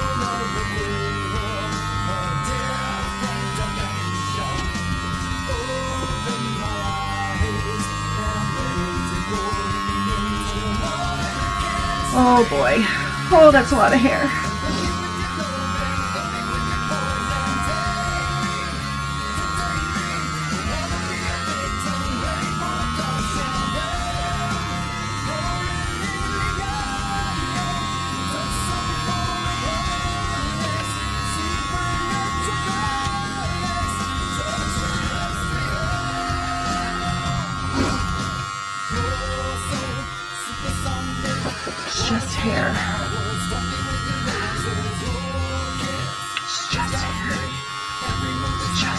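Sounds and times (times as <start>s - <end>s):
background music: 0.0s - 48.9s
electric hair clippers buzzing: 0.0s - 48.9s.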